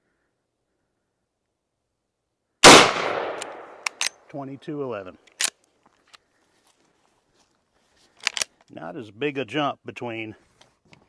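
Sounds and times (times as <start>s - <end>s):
sharp click: 3.0s - 4.2s.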